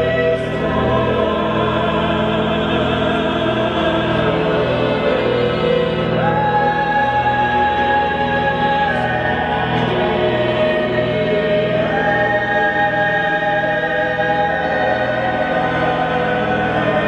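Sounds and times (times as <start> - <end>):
choir singing long held chords: 0.0 - 17.0.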